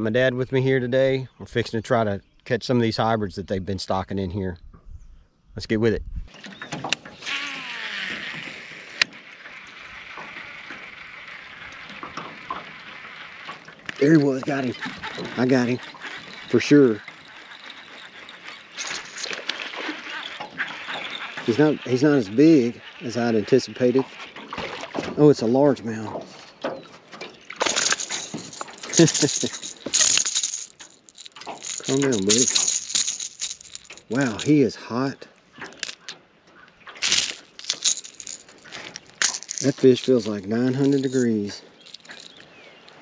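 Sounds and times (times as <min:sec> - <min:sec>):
fishing reel noise: 0:07.0 - 0:25.0, 0:27.5 - 0:34.5, 0:35.6 - 0:36.2, 0:37.0 - 0:43.0
water splashing: 0:09.0 - 0:26.0.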